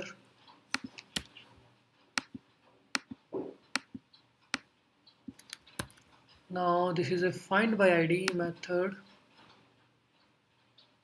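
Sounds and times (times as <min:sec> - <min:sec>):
keyboard and mouse clicks: 0:00.0 - 0:06.4, 0:08.2 - 0:08.7.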